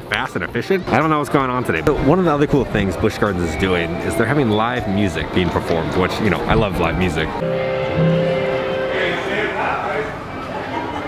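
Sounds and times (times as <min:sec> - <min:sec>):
crowd noise: 0:00.0 - 0:11.0
acoustic band chord: 0:07.4 - 0:09.8.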